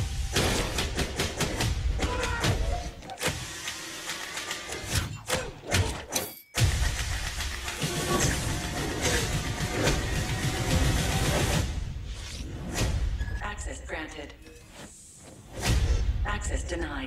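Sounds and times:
action trailer music: 0:00.0 - 0:17.0.

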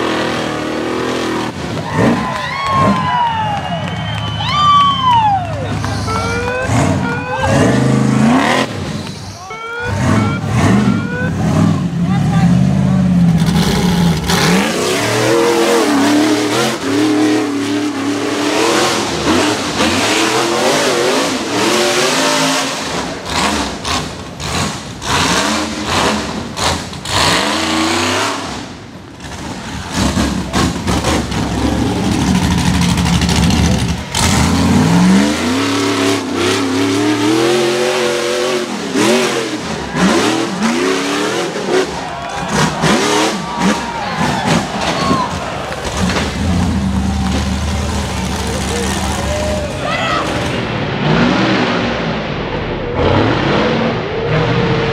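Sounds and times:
buggy engines revving hard: 0:00.0 - 0:54.9.

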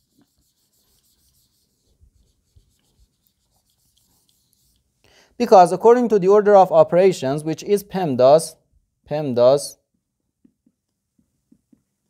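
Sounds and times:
eraser rubbing on whiteboard: 0:00.0 - 0:05.0.

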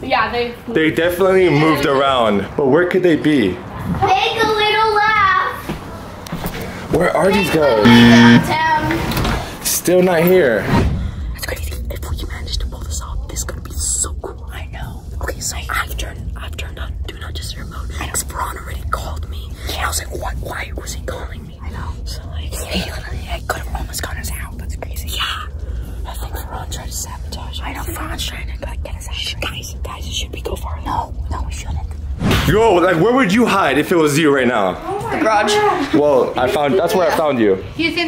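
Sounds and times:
low rumble: 0:10.7 - 0:33.0
boys whispering: 0:11.4 - 0:32.1.

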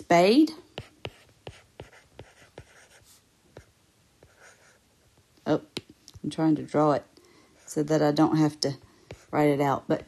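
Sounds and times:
stylus tapping on tablet screen: 0:05.7 - 0:06.3.

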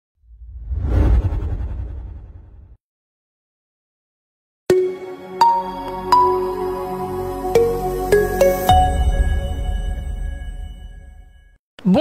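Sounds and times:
deep rumbling whoosh: 0:00.3 - 0:02.8.

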